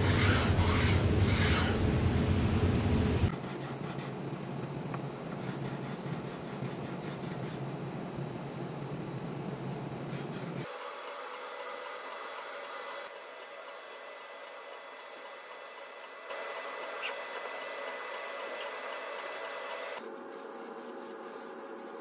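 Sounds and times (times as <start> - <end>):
hand sanding wooden box: 5.3 - 7.7, 20.0 - 22.0.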